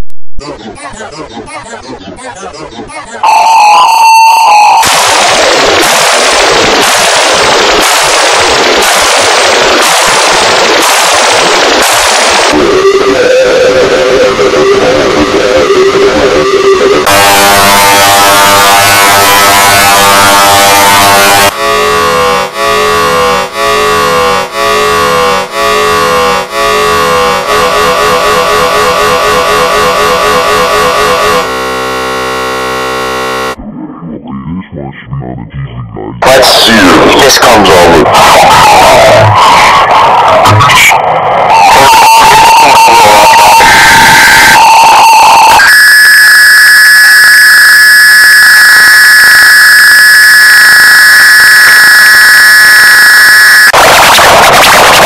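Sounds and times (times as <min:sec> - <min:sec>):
buzzing stack of tones: 0:00.4 - 0:33.6, 0:41.5 - 0:55.0
falling electronic sweep: 0:00.4 - 0:33.6, 0:36.2 - 0:55.0
harsh distorted noise: 0:00.4 - 0:35.3, 0:35.9 - 0:55.0.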